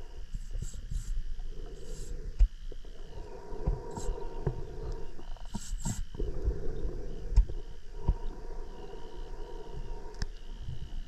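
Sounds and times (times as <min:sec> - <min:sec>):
low underwater rumbling: 0:00.0 - 0:11.0.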